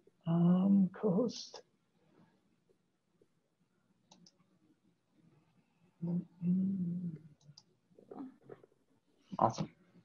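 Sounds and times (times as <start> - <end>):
computer mouse clicks: 4.1 - 4.4, 7.4 - 7.7.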